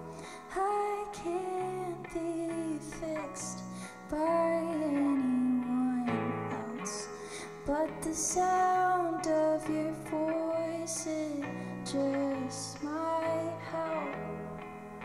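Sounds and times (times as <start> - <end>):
woman singing: 0.0 - 14.9
electric guitar: 0.0 - 15.0.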